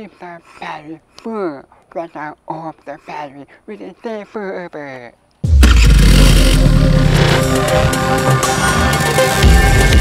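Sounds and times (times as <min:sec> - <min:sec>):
heavy-bass electronic music: 0:05.4 - 0:10.0
engine starting and revving: 0:05.5 - 0:08.0.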